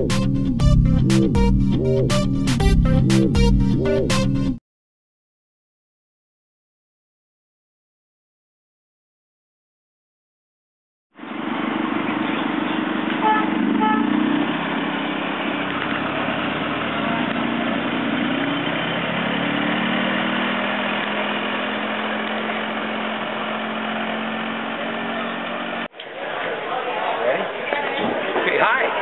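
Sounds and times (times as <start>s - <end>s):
tractor engine running: 11.2s - 25.9s
short horn beeps: 13.2s - 14.1s.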